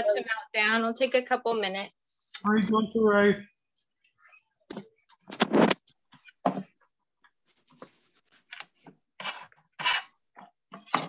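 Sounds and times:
objects rustling and clattering: 4.7 - 11.0.

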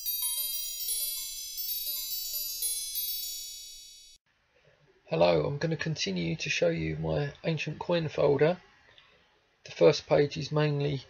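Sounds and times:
bell-like chime jingle: 0.0 - 4.2.

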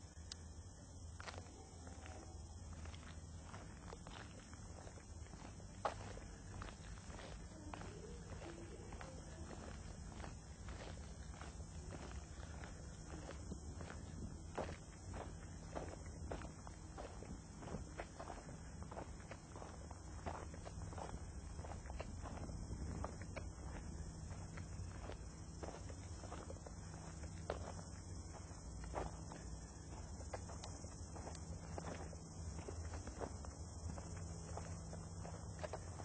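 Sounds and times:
steady low hum: 0.0 - 36.0
faint footsteps walking: 0.1 - 36.0.

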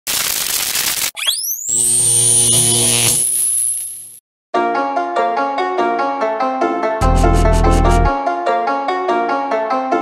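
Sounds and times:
thin high whine: 1.2 - 4.2
burst of static noise: 1.8 - 4.2.

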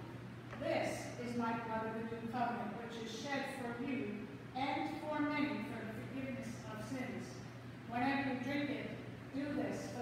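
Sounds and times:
woman speaking: 0.6 - 10.0.

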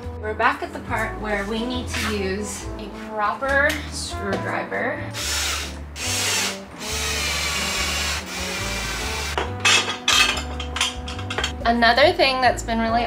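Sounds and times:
power drill driving screws: 5.2 - 9.4.

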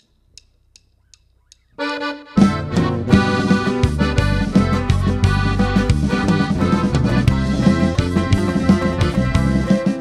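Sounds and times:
drumsticks clicking: 0.0 - 1.8
held accordion chord: 1.8 - 10.0.

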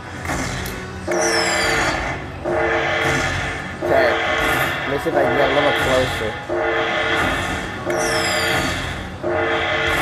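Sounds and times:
slot machine music: 1.0 - 10.0.

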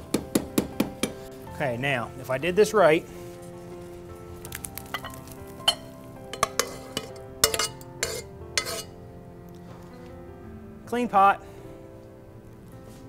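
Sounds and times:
spoon clinking on glass bowl: 4.9 - 8.9
metal spoon scraping a pot: 5.0 - 9.0.

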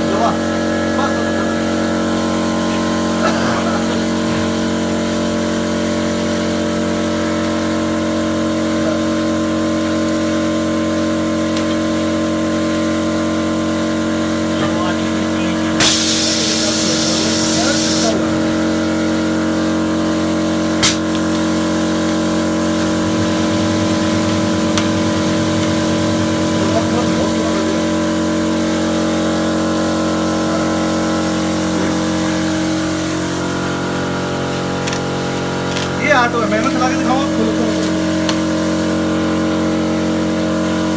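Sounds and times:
machine humming: 0.0 - 40.9
hiss of air: 15.8 - 18.2.

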